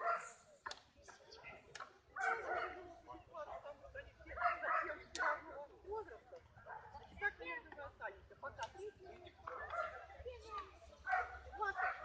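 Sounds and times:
dog barking: 0.0 - 0.4, 2.2 - 2.8, 4.4 - 5.4, 9.5 - 10.0, 11.0 - 12.0
people talking: 0.0 - 12.0.

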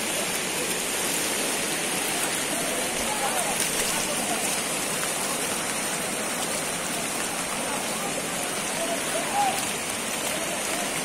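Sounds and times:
floodwater rushing through street: 0.0 - 11.0.

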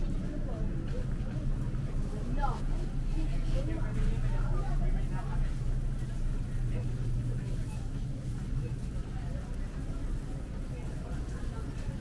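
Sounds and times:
faint voices of shoppers: 0.0 - 12.0.

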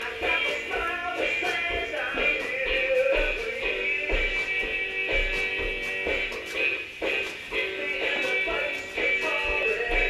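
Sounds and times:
music from cassette player: 0.0 - 10.0.

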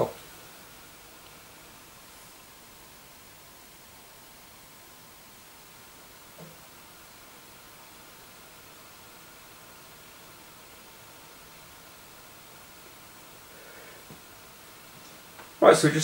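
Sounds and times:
room tone hiss: 0.0 - 16.0.

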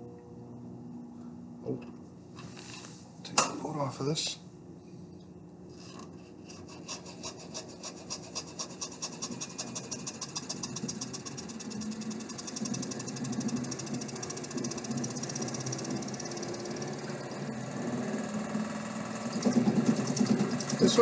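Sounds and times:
electric motor running hum: 5.8 - 21.0
fast even motor ticking: 6.6 - 21.0.

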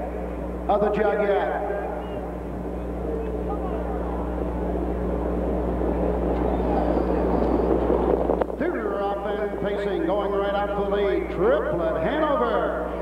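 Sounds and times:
car engine: 0.0 - 10.8
mains hum: 0.0 - 13.0
crowd chatter: 1.7 - 10.6.

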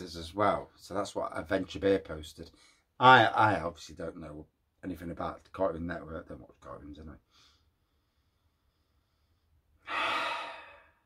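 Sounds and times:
man breathing through nose: 7.3 - 11.0.

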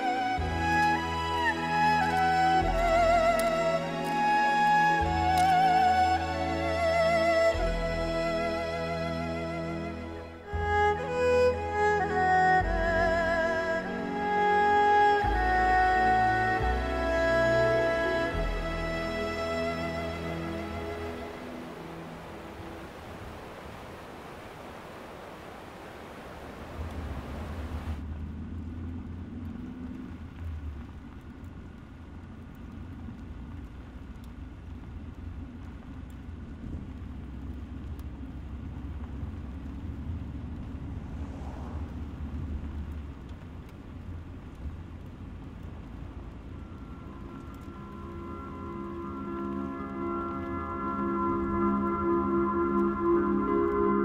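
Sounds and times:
fast river rushing: 0.0 - 28.0, 40.4 - 54.0
low vehicle rumble: 0.0 - 54.0.

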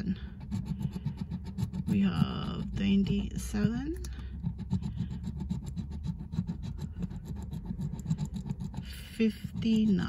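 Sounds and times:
scratching lottery ticket: 0.0 - 10.0.

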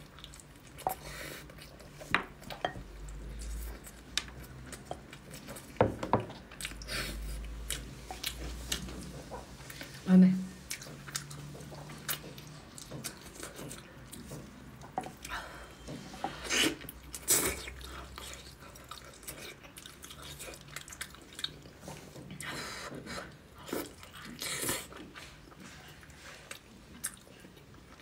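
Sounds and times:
close-up chewing and biting: 10.7 - 15.4, 16.5 - 28.0.

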